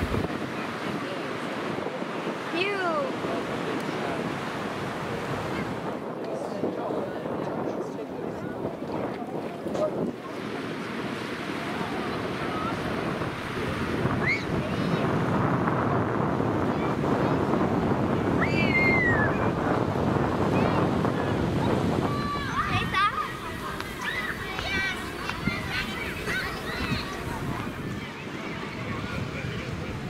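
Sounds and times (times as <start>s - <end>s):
small waves breaking on sand: 0.0s - 30.0s
wind buffeting microphone: 0.0s - 30.0s.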